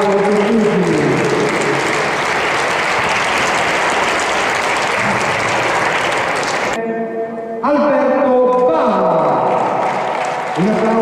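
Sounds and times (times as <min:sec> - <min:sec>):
audience applauding: 0:00.0 - 0:06.8, 0:09.2 - 0:11.0.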